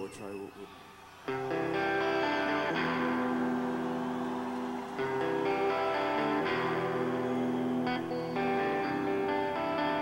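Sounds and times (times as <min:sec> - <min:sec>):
electric guitar chord ringing: 0:01.3 - 0:10.0.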